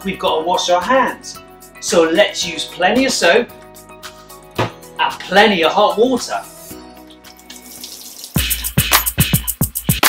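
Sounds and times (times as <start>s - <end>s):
hands washing under water: 7.1s - 9.1s
music with drum beat: 8.4s - 10.0s.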